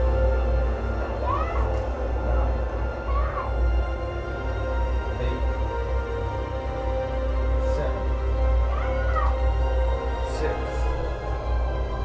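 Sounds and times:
film score over speakers: 0:00.0 - 0:12.0
steady deep drone: 0:00.0 - 0:12.0
girl crying wail: 0:01.2 - 0:01.8, 0:03.0 - 0:03.7, 0:08.6 - 0:09.5.

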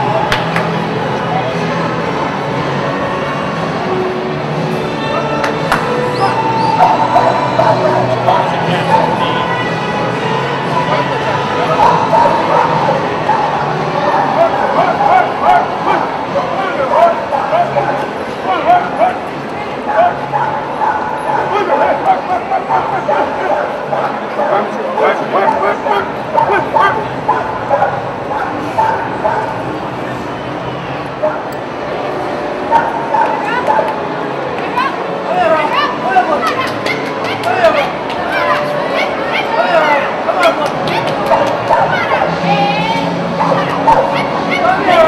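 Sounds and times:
crowd chatter: 0:00.0 - 0:45.0
dog yipping and whining: 0:06.0 - 0:08.1.

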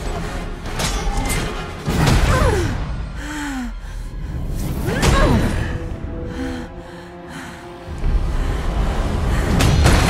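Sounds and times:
orchestral film score: 0:00.0 - 0:10.0
woman gasping: 0:03.1 - 0:04.4.

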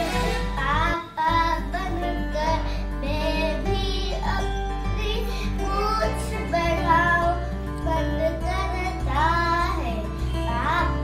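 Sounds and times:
background music: 0:00.0 - 0:11.0
girl reciting a poem: 0:00.6 - 0:11.0.

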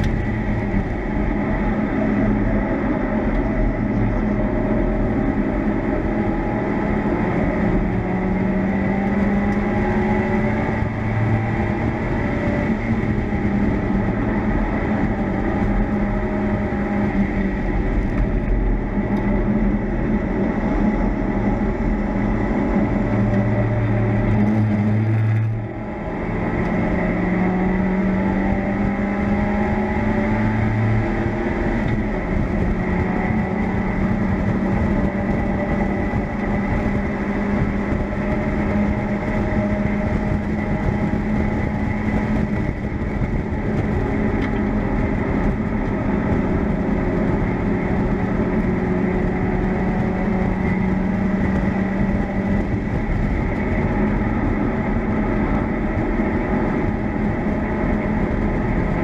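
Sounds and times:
race car engine at high revs: 0:00.0 - 0:59.0
road noise: 0:00.0 - 0:59.0
wind noise: 0:00.0 - 0:59.0.

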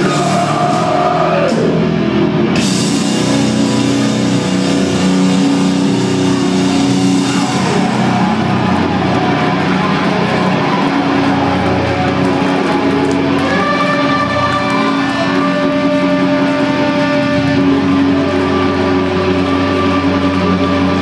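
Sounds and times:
distorted electric guitars: 0:00.0 - 0:21.0.

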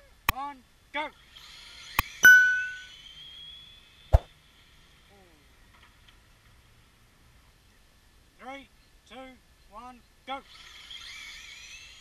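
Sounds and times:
bell chime: 0:02.2 - 0:02.9.

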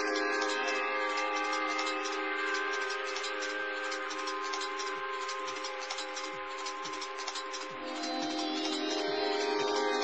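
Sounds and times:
electronic drone of held tones: 0:00.0 - 0:10.0.

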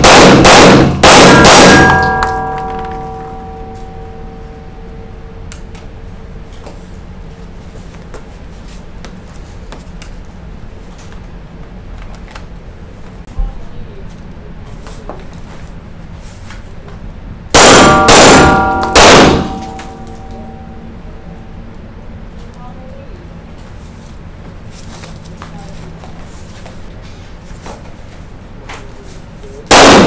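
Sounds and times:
pistol shots ringing indoors: 0:00.0 - 0:04.5, 0:17.5 - 0:20.8, 0:29.7 - 0:30.0.

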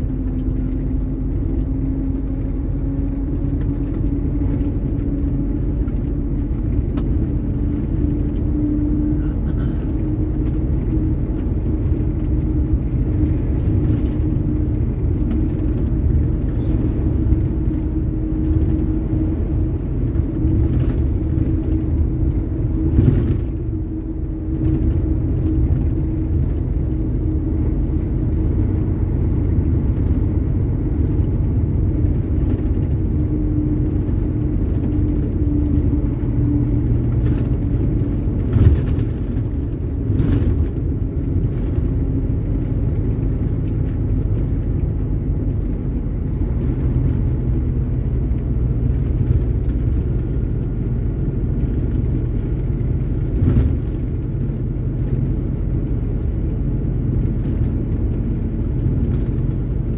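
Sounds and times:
truck engine and road rumble: 0:00.0 - 0:59.9.

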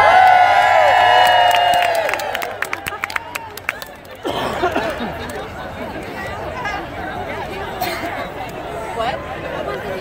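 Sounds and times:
crowd cheering and whooping: 0:00.0 - 0:04.0
crowd clapping: 0:00.0 - 0:05.5.

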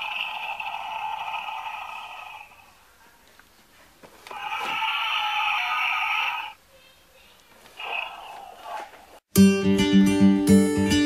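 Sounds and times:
tinny electronic toy roar: 0:00.0 - 0:02.7, 0:04.3 - 0:06.6, 0:07.8 - 0:08.8.

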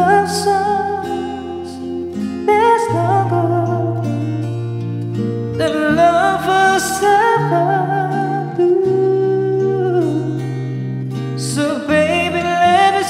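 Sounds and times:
man singing with vibrato: 0:00.0 - 0:04.4, 0:05.5 - 0:10.5, 0:11.4 - 0:13.0.

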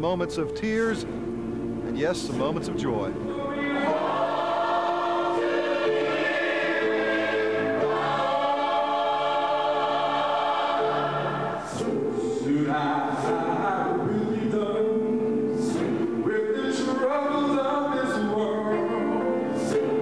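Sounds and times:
choir singing a hymn: 0:02.7 - 0:20.0.

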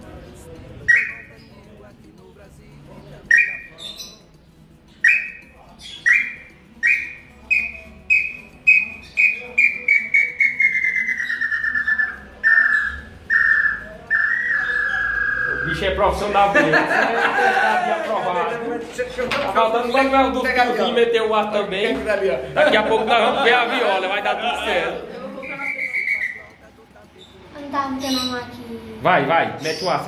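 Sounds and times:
bird-call whistle notes: 0:00.9 - 0:01.3, 0:03.3 - 0:03.7, 0:05.0 - 0:05.4, 0:06.0 - 0:15.8, 0:25.4 - 0:26.5.

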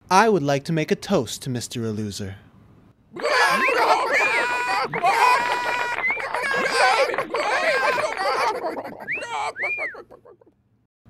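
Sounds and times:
person squealing: 0:03.2 - 0:10.3.

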